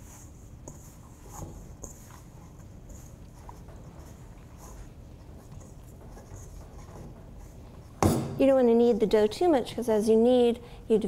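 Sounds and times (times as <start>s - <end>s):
hands kneading dough: 0.0s - 8.8s
low room hum: 0.0s - 11.0s.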